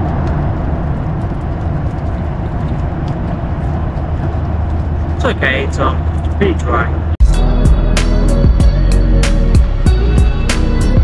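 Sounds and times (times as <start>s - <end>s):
airplane cabin engine rumble: 0.0s - 11.0s.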